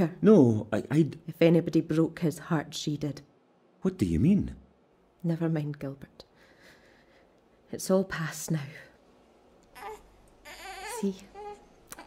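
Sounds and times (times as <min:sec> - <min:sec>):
baby crying: 0:09.7 - 0:12.0.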